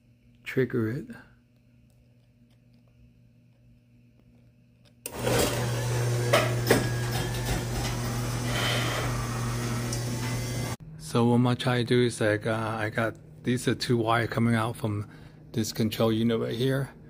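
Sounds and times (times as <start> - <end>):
garage door motor humming and rattling: 5.0 - 10.8
clicks: 9.8 - 10.4.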